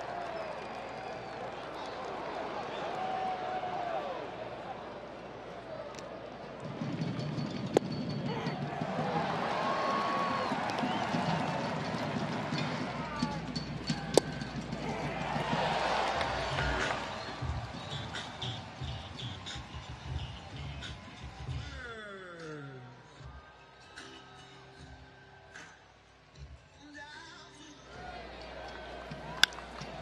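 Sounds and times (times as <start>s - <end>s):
ballpark crowd noise: 0.0s - 30.0s.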